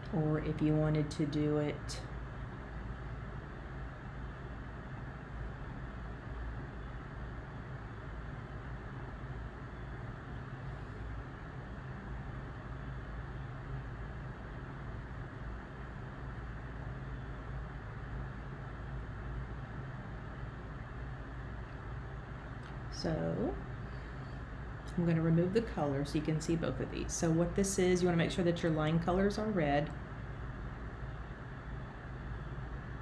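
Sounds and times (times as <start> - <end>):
room noise hum and hiss: 0.0 - 33.0.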